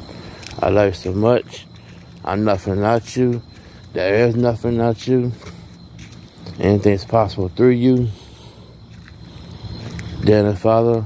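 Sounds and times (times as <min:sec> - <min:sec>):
low background hum: 0:00.0 - 0:11.0
man's voice: 0:00.6 - 0:05.5, 0:06.5 - 0:08.2, 0:10.2 - 0:11.0.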